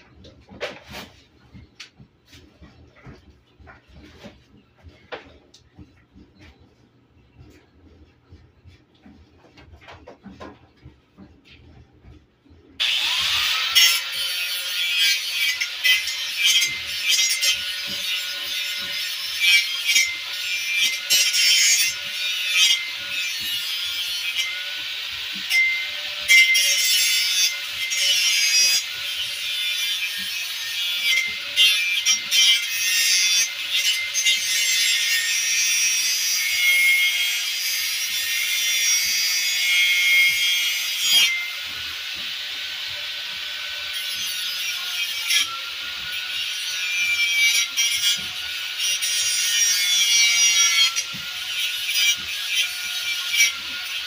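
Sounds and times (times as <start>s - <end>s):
angle grinder grinding steel: 12.8s - 54.0s.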